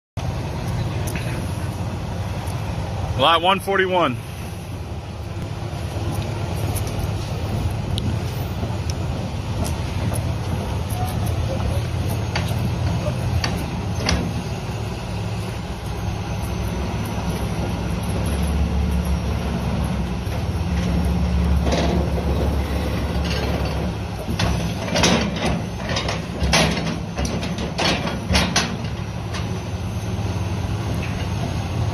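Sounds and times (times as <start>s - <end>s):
diesel excavator engine running: 0.2s - 31.9s.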